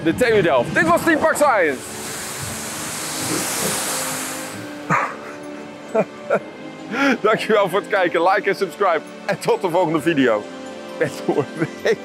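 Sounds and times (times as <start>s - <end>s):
rushing hiss of water spray: 1.2s - 6.6s
droplets raining down on water: 1.5s - 5.5s.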